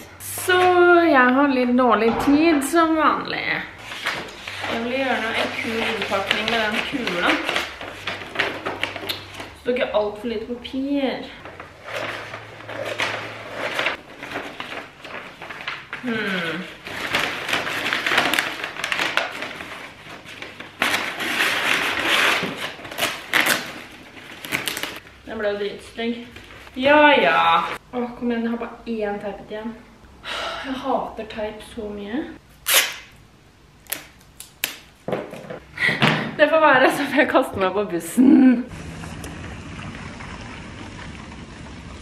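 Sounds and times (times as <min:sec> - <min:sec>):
paper rustling: 0:03.8 - 0:09.9, 0:11.2 - 0:25.2
tape and gift wrap crackling: 0:03.8 - 0:09.9, 0:11.2 - 0:25.1, 0:32.6 - 0:33.1
scissors cutting paper: 0:03.9 - 0:09.4.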